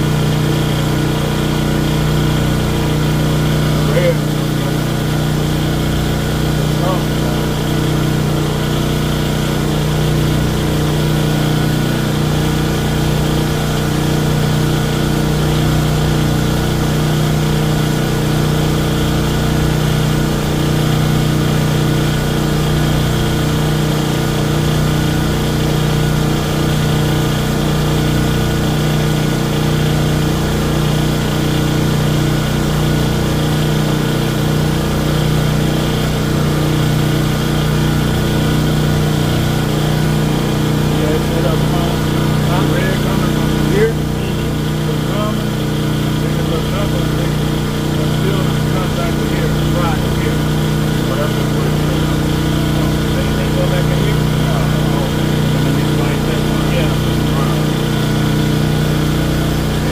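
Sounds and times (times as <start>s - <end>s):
portable generator running: 0.0s - 59.9s.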